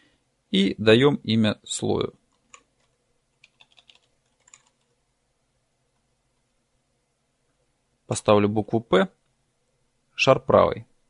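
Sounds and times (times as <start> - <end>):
computer keyboard key clicks: 3.4 - 4.9.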